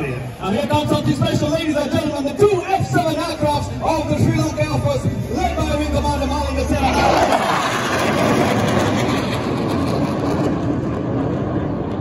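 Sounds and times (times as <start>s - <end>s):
jet aircraft roar overhead: 0.0s - 12.0s.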